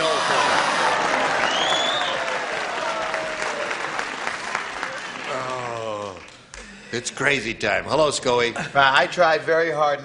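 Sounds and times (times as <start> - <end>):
audience laughing: 0.0 - 1.6
audience applauding: 0.0 - 6.5.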